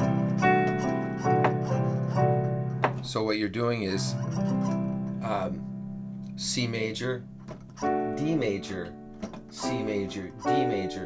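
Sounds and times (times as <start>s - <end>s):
keyboard playing chords: 0.0s - 11.0s.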